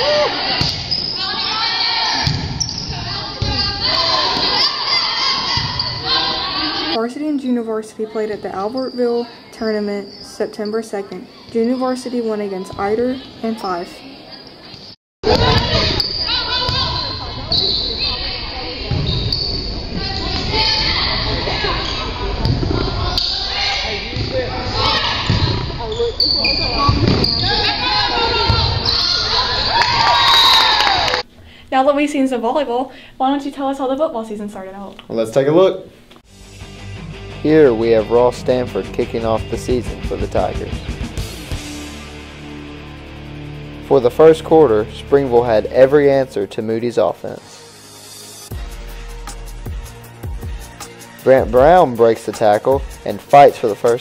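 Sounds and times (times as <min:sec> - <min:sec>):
players and spectators cheering: 0:00.0 - 0:02.3, 0:26.5 - 0:31.2
voices calling and cheering: 0:00.0 - 0:31.2.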